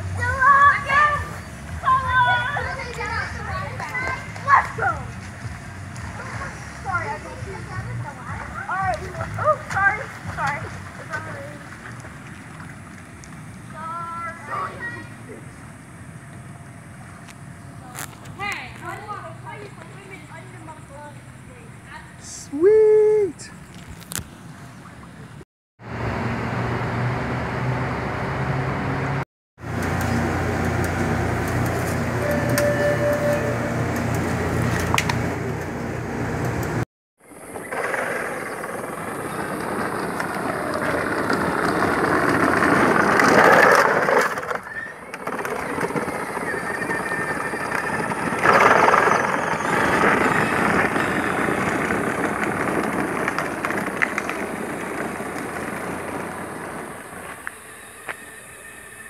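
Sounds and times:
plastic wheels rumbling on asphalt: 0.0 - 22.3, 29.6 - 58.2
low engine hum: 24.4 - 36.8, 49.8 - 58.9.

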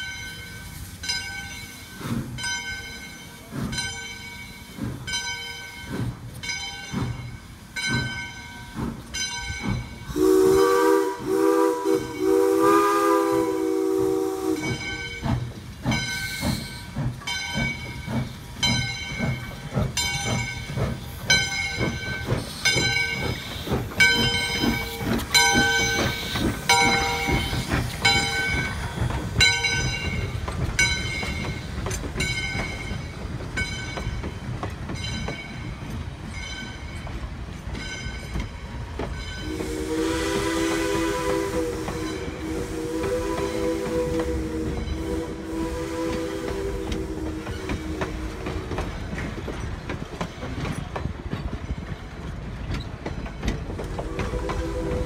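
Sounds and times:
locomotive bell ringing: 0.0 - 10.2, 14.6 - 39.6
steam locomotive chime whistle: 0.0 - 31.6, 39.1 - 49.3, 53.7 - 55.0
steam locomotive exhaust beat: 0.0 - 55.0.

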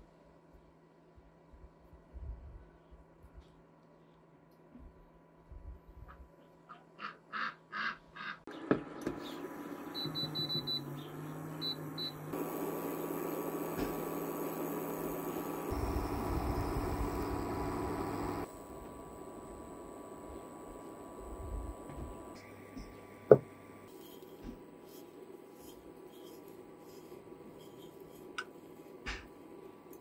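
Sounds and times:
cooling fan humming: 8.5 - 30.0
cooktop touch button beeps: 10.0 - 10.9.

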